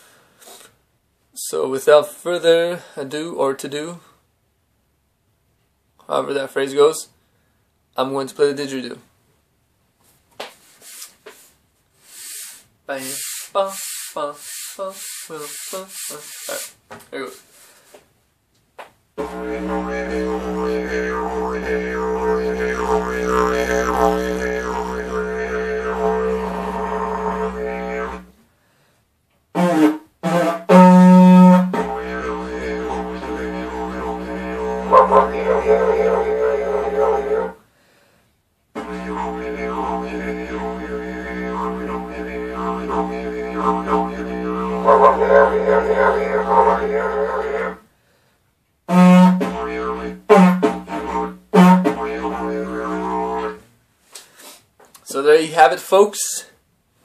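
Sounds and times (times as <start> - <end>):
cardboard tube scraping: 19.2 - 28.2
didgeridoo drone: 19.2 - 28.3, 30.4 - 37.6, 38.8 - 47.8, 48.9 - 53.6.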